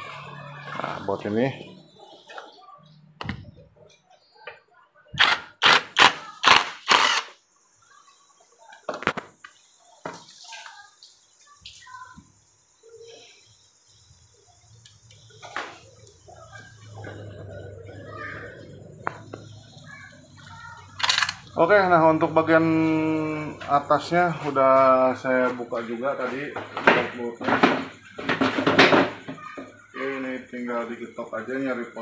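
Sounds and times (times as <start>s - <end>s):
cordless power driver: 6.5s - 7.3s
metal parts clicking and knocking: 21.0s - 21.4s.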